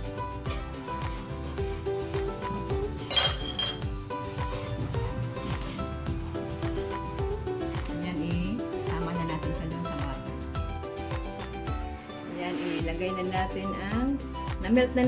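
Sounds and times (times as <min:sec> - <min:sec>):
music with steady beat: 0:00.0 - 0:15.0
spoon clinking metal bowl: 0:03.0 - 0:04.0.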